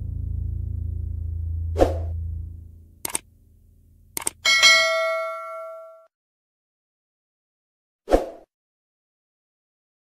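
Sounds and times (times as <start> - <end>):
mouse clicks: 3.0 - 3.2
bell-like notification ding: 4.4 - 6.1.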